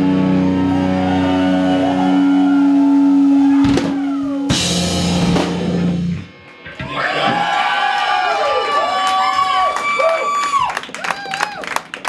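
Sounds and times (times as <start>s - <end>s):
distorted guitar and bass chord: 0.0s - 7.2s
heavy rock band: 0.0s - 8.3s
drum hits: 3.6s - 7.5s.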